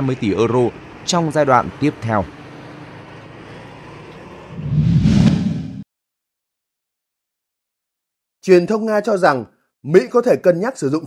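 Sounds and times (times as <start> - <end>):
vehicle engine and road noise: 0.0 - 5.8.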